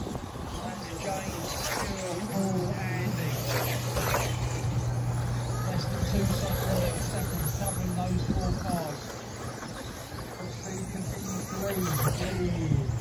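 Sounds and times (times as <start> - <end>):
rc car electric motors whining: 0.0 - 13.0
steady low hum: 0.0 - 13.0.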